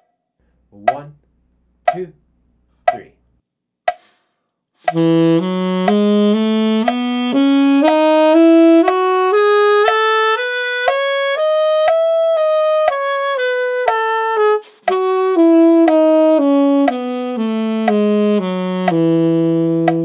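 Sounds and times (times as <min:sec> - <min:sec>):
metronome clicks: 0:00.8 - 0:02.2, 0:02.8 - 0:03.2, 0:03.9 - 0:04.2, 0:04.8 - 0:05.1, 0:05.8 - 0:08.2, 0:08.8 - 0:13.2, 0:13.8 - 0:14.1, 0:14.8 - 0:16.2, 0:16.8 - 0:20.0
saxophone playing a scale: 0:04.8 - 0:20.0.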